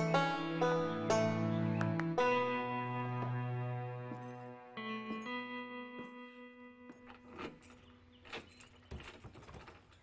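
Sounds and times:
plucked-string music: 0.0 - 7.8.

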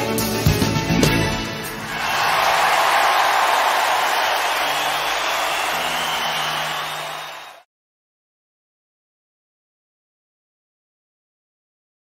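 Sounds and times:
audience applause and cheering: 1.7 - 7.7.

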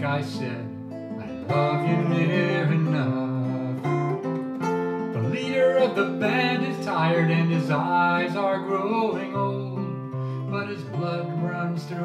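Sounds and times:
man singing: 0.0 - 4.2, 5.2 - 12.0
acoustic guitar playing: 0.0 - 12.0.

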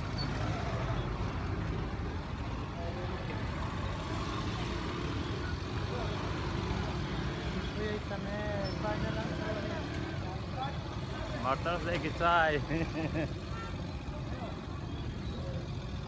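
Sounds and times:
motorcycle engines rumbling: 0.0 - 16.0
people's voices: 1.7 - 16.0.

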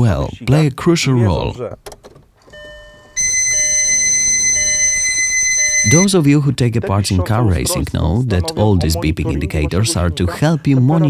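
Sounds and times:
lower beep switching on and off: 2.5 - 6.1
steady high-pitched warning beep: 2.5 - 6.2.

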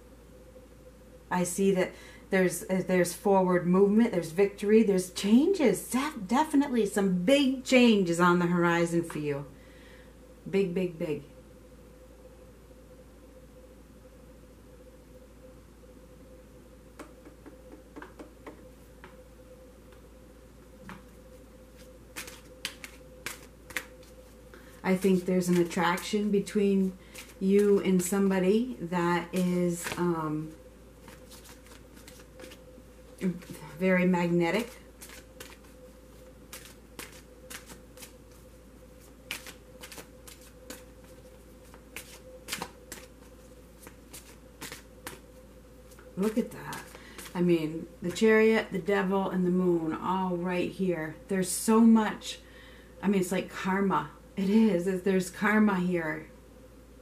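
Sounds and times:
faint steady hum: 0.0 - 57.0
cards being shuffled: 20.9 - 28.1, 29.2 - 30.2, 31.0 - 32.6, 34.5 - 47.4
cards clicking: 22.2 - 24.1, 39.3 - 40.8.

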